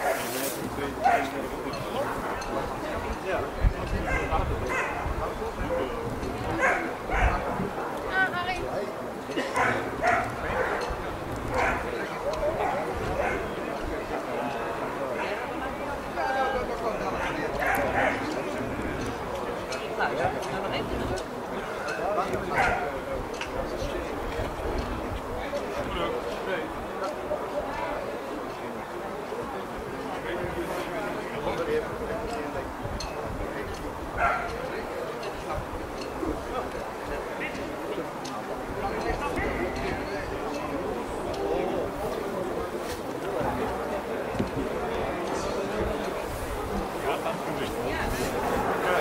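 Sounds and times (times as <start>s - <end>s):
people talking: 0.0s - 49.0s
dogs barking: 1.0s - 1.4s, 4.0s - 5.2s, 6.5s - 7.6s, 9.5s - 13.6s, 17.2s - 18.4s, 22.5s - 22.9s, 34.2s - 34.6s.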